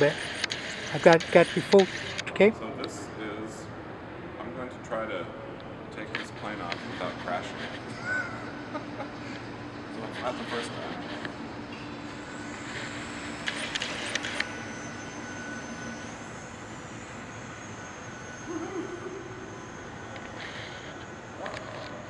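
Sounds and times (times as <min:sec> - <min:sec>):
model plane motor buzzing: 0:12.2 - 0:22.0.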